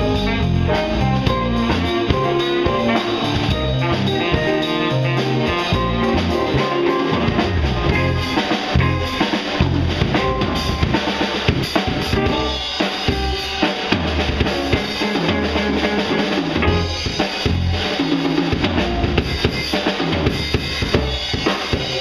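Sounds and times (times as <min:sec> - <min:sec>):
drum kit with rimshots: 0:00.0 - 0:22.0
live band playing: 0:00.0 - 0:22.0.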